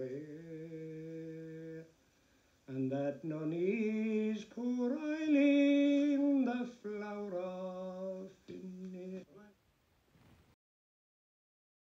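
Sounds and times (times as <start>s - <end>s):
man singing unaccompanied: 0.0s - 2.0s, 2.7s - 9.6s.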